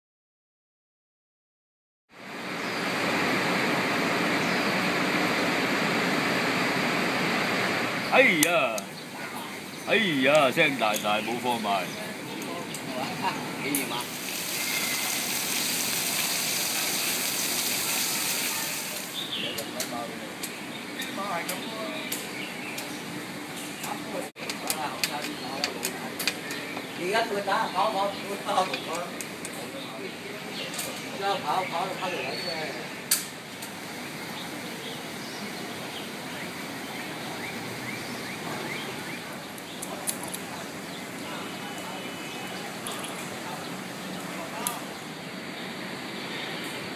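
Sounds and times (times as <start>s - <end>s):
outdoor background noise: 2.1s - 46.9s
steady rushing hiss: 2.2s - 32.0s
faint voices: 8.1s - 15.4s, 38.4s - 45.4s.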